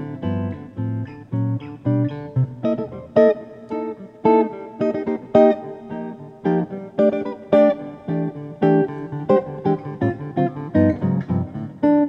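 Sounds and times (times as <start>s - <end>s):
jazz guitar plucked chords: 0.0s - 12.0s.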